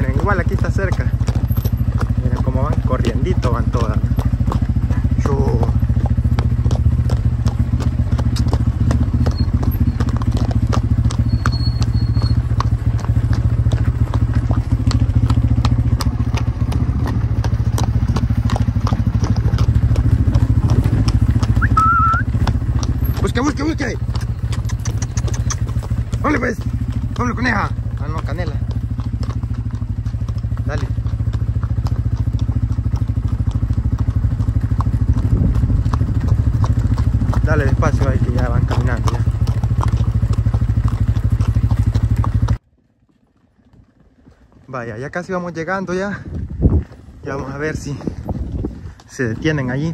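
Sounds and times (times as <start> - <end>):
motorcycle engine running slowly: 0.0 - 49.9.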